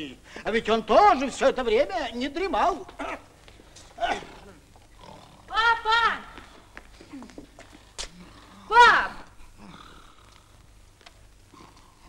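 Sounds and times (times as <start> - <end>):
drawn-out vocal sound: 3.0 - 10.7
girl shouting: 5.5 - 6.4, 8.7 - 9.3.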